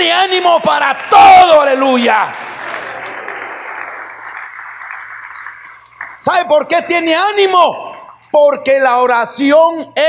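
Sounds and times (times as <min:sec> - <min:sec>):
congregation applauding: 0:00.0 - 0:08.2.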